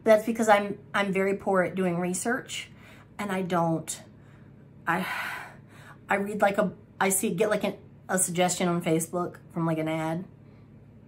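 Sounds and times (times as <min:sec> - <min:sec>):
woman speaking: 0:00.0 - 0:04.1, 0:04.9 - 0:10.3
woman breathing: 0:02.7 - 0:03.2, 0:04.0 - 0:06.1.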